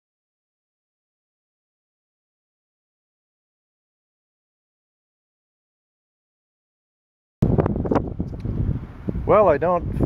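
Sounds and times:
wind buffeting microphone: 7.4 - 10.0.

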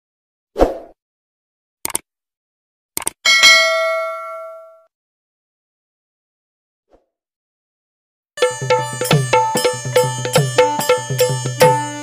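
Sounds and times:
cursor clicks: 1.8 - 2.1, 3.0 - 3.2
bright bell ding: 3.3 - 4.9, 8.4 - 12.0.

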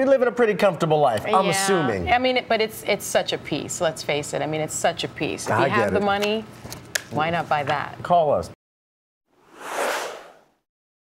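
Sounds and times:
whoosh sound effect: 9.4 - 10.6.

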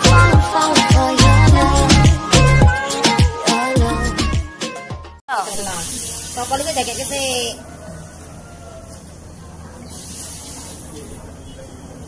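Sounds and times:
music: 0.0 - 5.2.

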